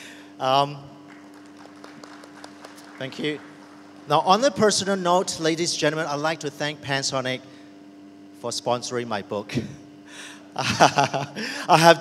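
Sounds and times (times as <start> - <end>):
audience applauding: 1.1 - 4.6.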